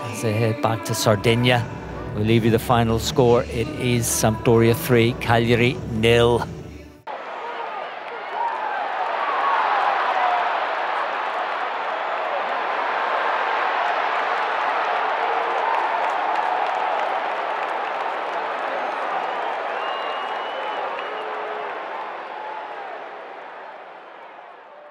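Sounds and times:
scattered clapping: 8.0s - 24.8s.

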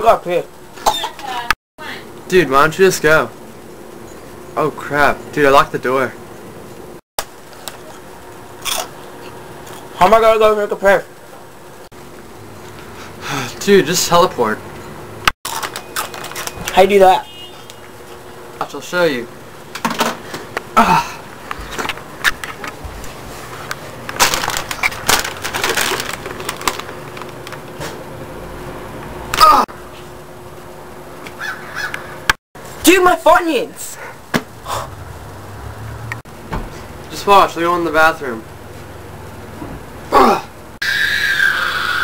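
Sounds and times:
crunch of biting a chip: 15.5s - 16.6s
plastic chip bag crinkling: 15.5s - 16.8s, 24.1s - 27.8s.

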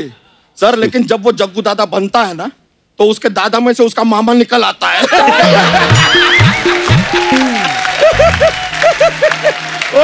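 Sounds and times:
people laughing heartily: 5.0s - 6.8s, 7.8s - 9.8s
comic music cue: 5.4s - 9.5s.

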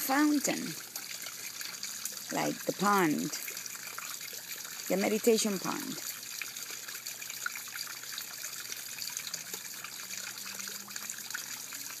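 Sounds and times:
fountain water trickling over rocks: 0.0s - 12.0s.

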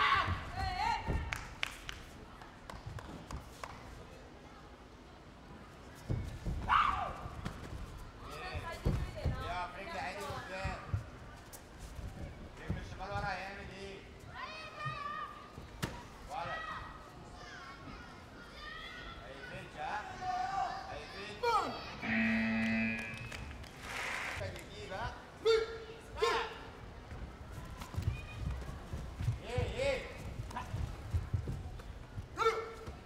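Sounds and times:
low electronic buzzer tone: 22.0s - 23.5s.

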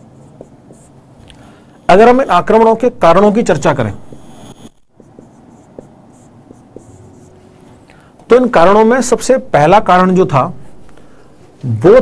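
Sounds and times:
marker tapping on whiteboard: 0.0s - 1.0s, 5.0s - 7.0s
marker scratching on whiteboard: 0.0s - 1.3s, 2.0s - 8.8s.

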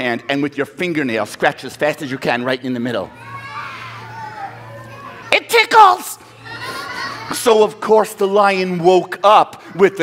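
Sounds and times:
children chattering: 3.0s - 5.4s, 6.1s - 10.0s.

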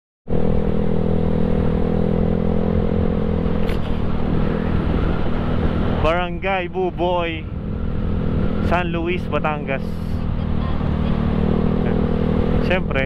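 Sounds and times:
scooter engine cruising: 0.3s - 13.0s
wind and road rush: 0.3s - 13.0s.

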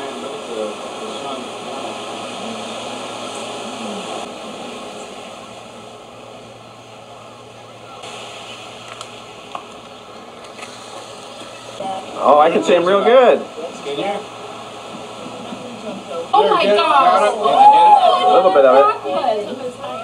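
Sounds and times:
indistinct background voices: 0.0s - 5.9s
low constant hum: 0.0s - 20.0s
steady hiss: 0.0s - 20.0s.

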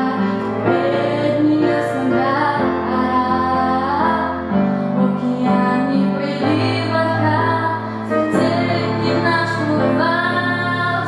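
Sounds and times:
woman singing into microphone: 0.0s - 11.0s.

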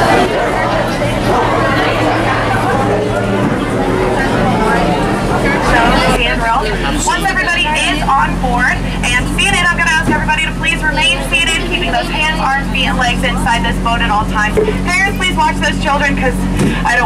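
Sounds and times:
boat motor humming: 0.0s - 17.0s
passengers talking: 0.0s - 17.0s
person talking on microphone: 0.0s - 17.0s.

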